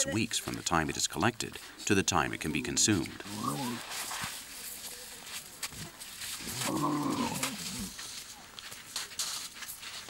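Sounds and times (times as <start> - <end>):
camel calling: 2.6 - 4.0, 6.4 - 8.0.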